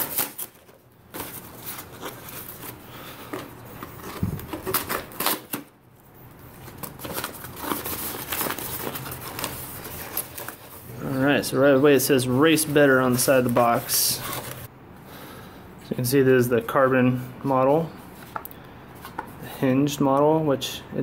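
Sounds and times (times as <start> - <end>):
paper tear strip ripping: 0.0 - 0.8
stiff paper crinkling: 0.0 - 5.7, 6.4 - 14.7.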